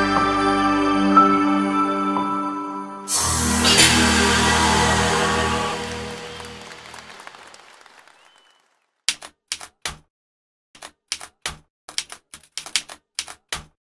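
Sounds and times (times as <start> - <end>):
logo sting chord: 3.1 - 6.9
typewriter typing clacks: 9.1 - 10.0, 10.8 - 13.8.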